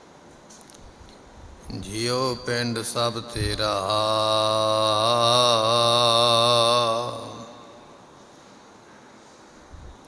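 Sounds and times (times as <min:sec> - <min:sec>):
man chanting long note: 0:01.7 - 0:08.0.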